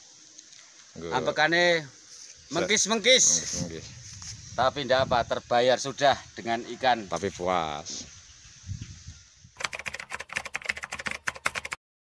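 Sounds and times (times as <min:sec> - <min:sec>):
rapid sharp clicks: 0:09.6 - 0:11.8.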